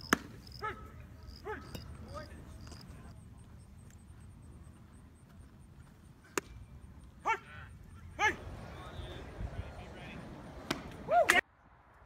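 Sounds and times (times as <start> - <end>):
baseball bat crack: 0.0 - 2.1, 6.2 - 6.7, 8.3 - 11.4.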